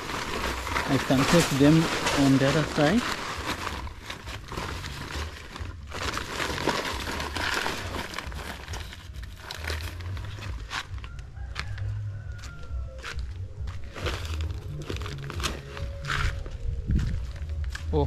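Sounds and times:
wind rumble on microphone: 16.2 - 17.8.

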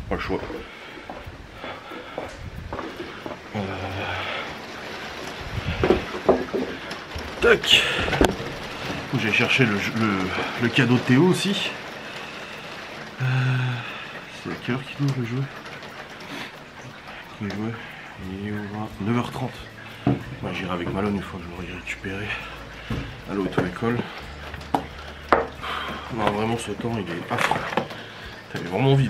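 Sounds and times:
rain hissing: 0.0 - 29.0.

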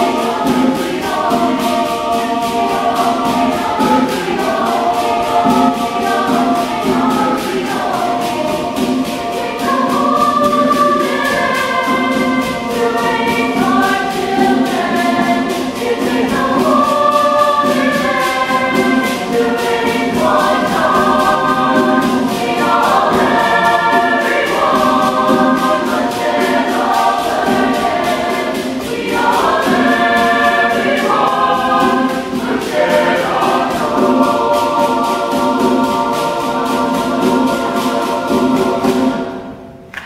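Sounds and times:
choir singing in parts: 0.0 - 40.0.

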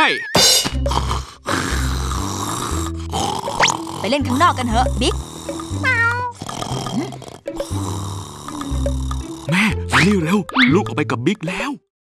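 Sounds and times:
background music: 0.0 - 11.9
cartoon snore: 0.9 - 9.7.

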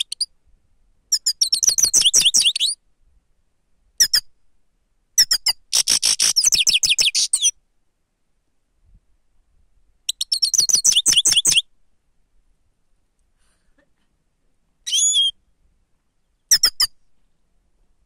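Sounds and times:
goldfinch twittering song: 10.1 - 11.6
short high bird calls: 14.8 - 15.4.

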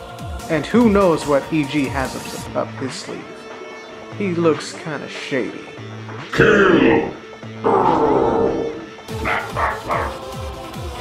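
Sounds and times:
background music with bass throb: 5.9 - 11.0.

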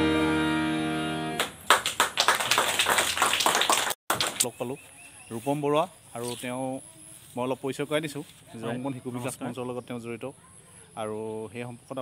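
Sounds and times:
harmonium chord: 0.0 - 1.5
hand claps: 1.4 - 4.5.

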